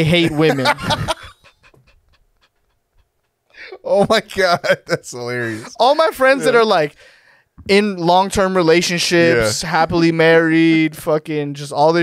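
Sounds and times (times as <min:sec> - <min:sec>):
men's breathy laughter: 0:00.3 - 0:03.8.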